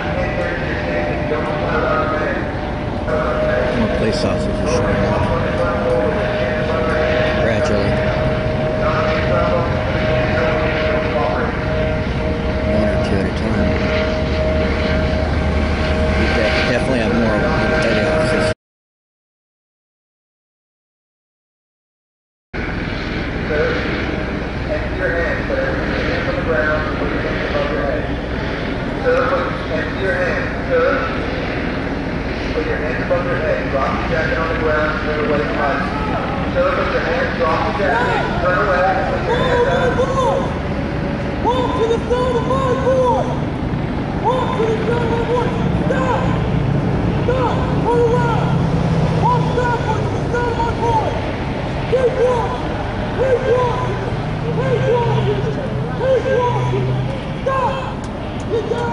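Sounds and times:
faint voices: 0.0 - 18.6, 23.4 - 58.9
helicopter drone: 0.0 - 18.6, 22.6 - 58.9.

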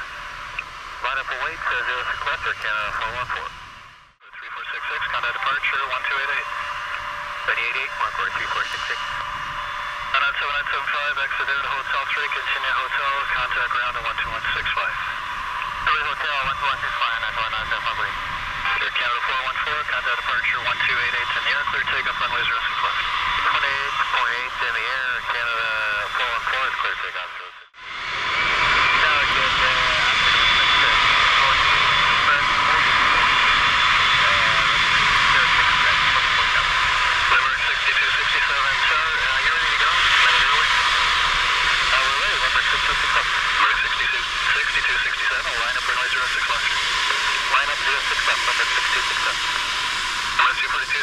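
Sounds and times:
jet engines hissing: 0.0 - 51.0
faint radio chatter: 1.0 - 3.5, 4.2 - 9.2, 10.1 - 27.8, 28.8 - 41.0, 41.8 - 49.7, 50.4 - 51.0.

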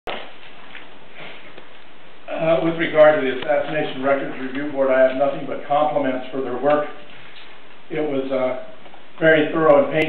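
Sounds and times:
recording hiss: 0.1 - 10.0.

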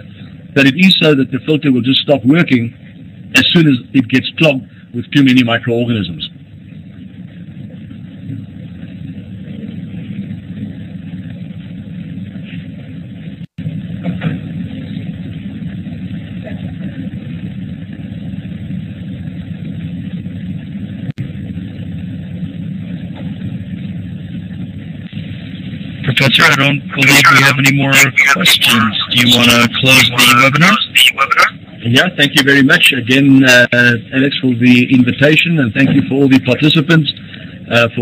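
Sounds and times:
low rumbling noise: 0.0 - 38.0.

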